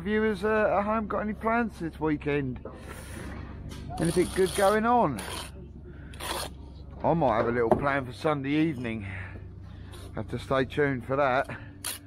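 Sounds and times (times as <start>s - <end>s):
trowel scraping wet mortar: 4.0s - 5.5s.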